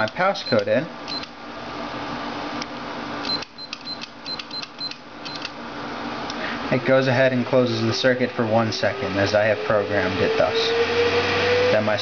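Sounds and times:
background hiss and hum: 0:00.0 - 0:12.0
keypad beeps: 0:00.4 - 0:01.3, 0:03.2 - 0:05.5.

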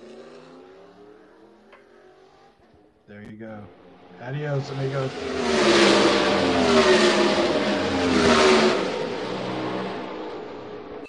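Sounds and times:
car engine at high revs: 0:00.0 - 0:02.9, 0:03.8 - 0:11.0.

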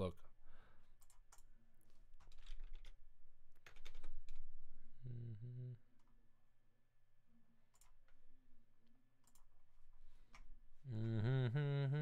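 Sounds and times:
computer keyboard typing: 0:02.2 - 0:04.5, 0:07.7 - 0:08.1, 0:09.2 - 0:09.5.

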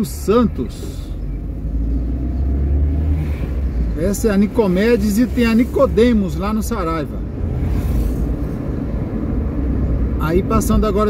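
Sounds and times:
car engine rumble and road noise: 0:00.0 - 0:11.0.

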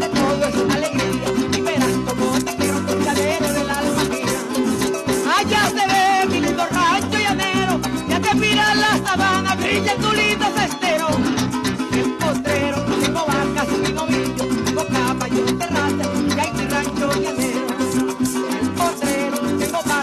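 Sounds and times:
cuatro strumming: 0:00.0 - 0:20.0
harp: 0:00.0 - 0:20.0
maracas shaking: 0:00.0 - 0:20.0
woman singing with vibrato: 0:00.0 - 0:20.0.

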